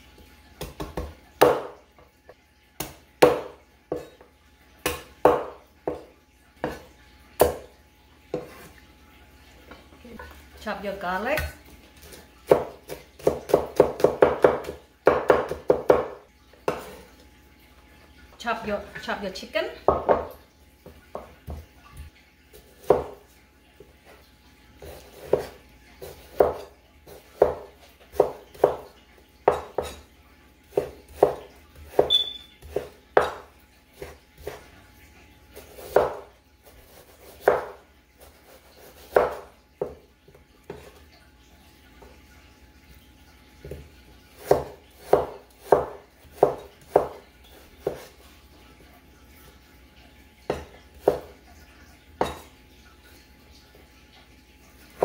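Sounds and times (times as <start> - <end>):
cleaver chopping meat on wood: 0.6 - 1.8, 2.8 - 4.1, 4.8 - 6.8, 12.5 - 16.9, 37.4 - 37.8, 44.4 - 47.2.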